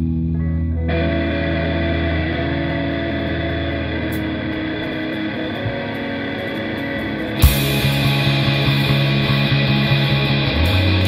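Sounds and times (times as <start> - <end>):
electric guitar chords: 0.0 - 11.0
rock band playing: 0.9 - 11.0
cymbal crash: 7.4 - 9.3.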